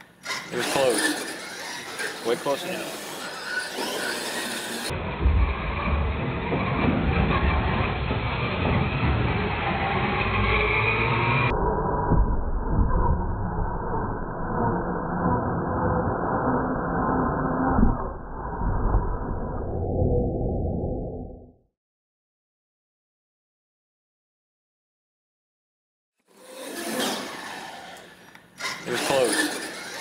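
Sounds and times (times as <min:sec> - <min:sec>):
toy truck motor whine: 0:00.0 - 0:04.9, 0:26.3 - 0:30.0
wheels knocking on ramps: 0:05.2 - 0:09.7.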